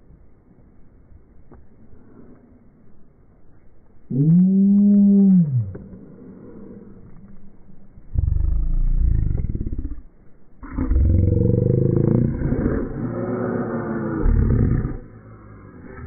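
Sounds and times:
animal-like roaring and growling: 4.1s - 6.9s, 8.2s - 10.0s, 10.6s - 16.0s.

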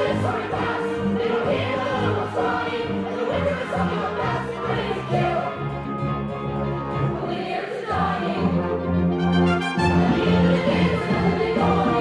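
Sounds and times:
band with keyboard accompaniment: 0.0s - 12.0s
ensemble singing: 0.0s - 12.0s.

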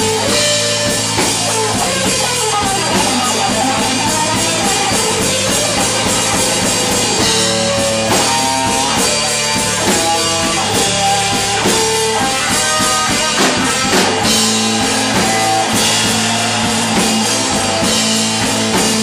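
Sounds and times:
drum kit with cymbals: 0.0s - 19.0s
electric guitar lead: 0.0s - 19.0s.

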